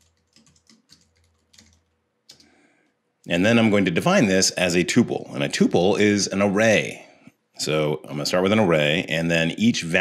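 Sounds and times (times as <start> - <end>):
faint keyboard typing clicks: 0.0 - 3.0.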